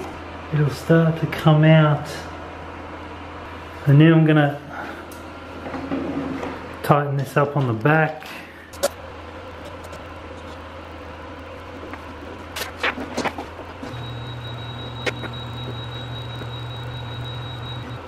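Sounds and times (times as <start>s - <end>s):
constant low hum: 0.0s - 18.0s
stepper motor whine: 13.8s - 18.0s.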